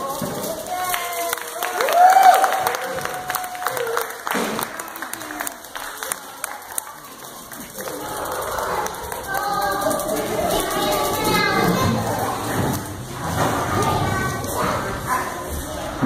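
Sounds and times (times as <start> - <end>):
audience clapping and cheering: 0.0 - 11.5
crowd voices: 0.0 - 16.0
high whoop: 1.4 - 4.2.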